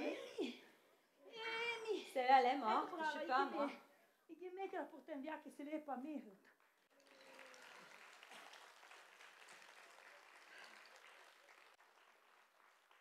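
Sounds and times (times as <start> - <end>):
audience applauding faintly: 6.6 - 13.0.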